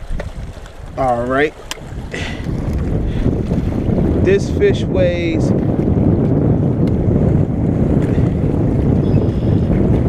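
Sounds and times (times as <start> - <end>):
waves washing against rocks: 0.0 - 5.9
wind buffeting microphone: 0.0 - 10.0.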